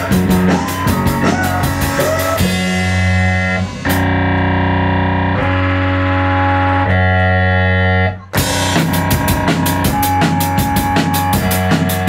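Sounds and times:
drums: 0.0 - 5.7, 8.2 - 12.0
distorted electric guitar chords: 0.0 - 12.0
keyboard: 0.0 - 12.0.

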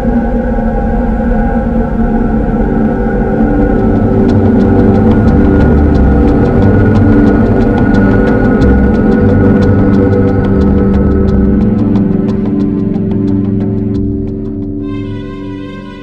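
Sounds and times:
dark droning score: 0.0 - 16.0
sharp irregular ticks: 3.6 - 14.7.

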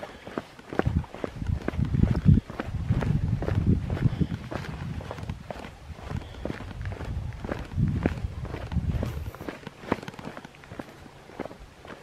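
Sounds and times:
footsteps on rock: 0.0 - 12.0.

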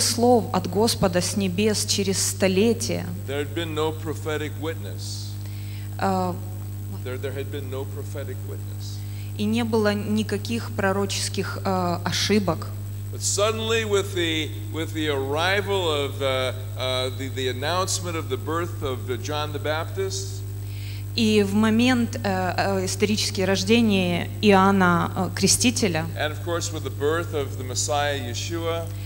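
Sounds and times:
electrical mains hum: 0.0 - 29.0.

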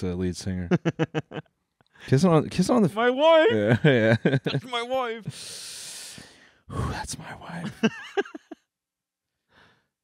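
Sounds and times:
man laughing: 0.6 - 1.5, 3.3 - 5.2, 7.6 - 8.6
faint breath: 5.3 - 6.7, 9.4 - 9.9.

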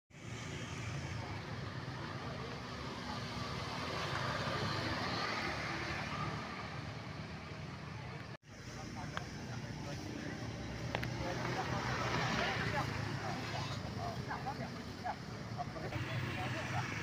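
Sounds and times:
motor scooters passing: 0.2 - 17.0.

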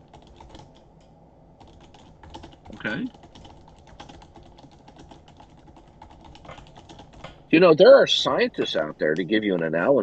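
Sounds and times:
typing on keyboard: 0.1 - 0.8, 1.6 - 7.4.

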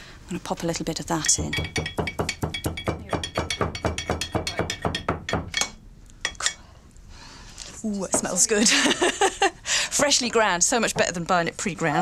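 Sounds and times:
pestle pounding in mortar: 1.2 - 5.8.

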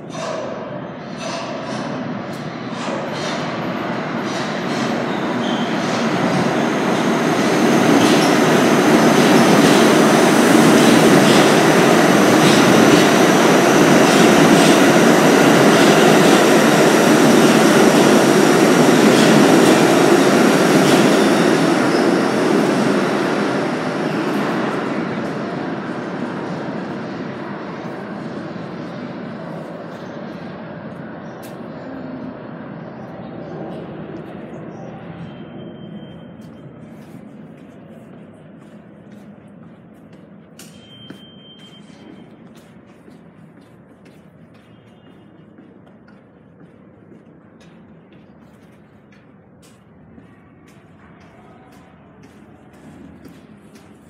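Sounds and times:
rail joint clicks: 0.0 - 7.1, 8.0 - 20.2, 38.8 - 54.0
train wheels rumbling on rails: 0.0 - 54.0
high wheel squeal: 5.1 - 5.9.

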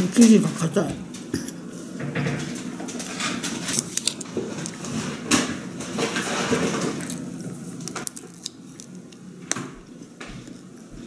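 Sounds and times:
person chewing: 6.8 - 9.2.

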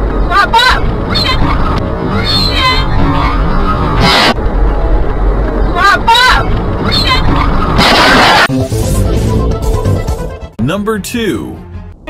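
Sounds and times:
car crash: 7.7 - 8.5.

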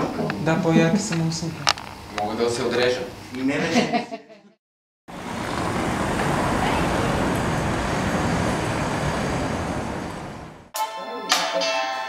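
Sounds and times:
cars and vans driving past: 5.1 - 10.7.

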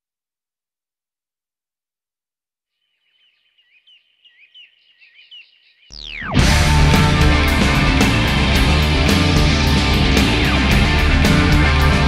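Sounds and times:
faint bird-like chirping: 2.7 - 6.4
loud band music: 6.4 - 12.0.

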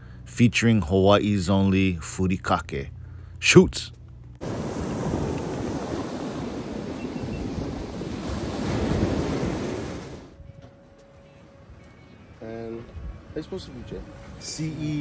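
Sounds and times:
surf breaking over rocks: 4.4 - 10.4.

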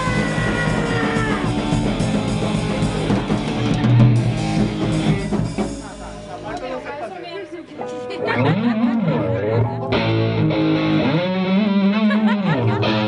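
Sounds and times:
loose instrument sounds: 0.0 - 13.0
punk band playing: 0.0 - 13.0.

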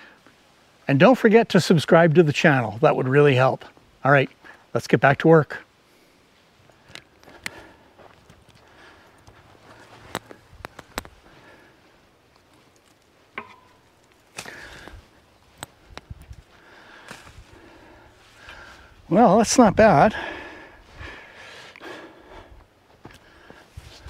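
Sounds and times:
footsteps on dirt: 6.6 - 18.9, 22.3 - 24.0.

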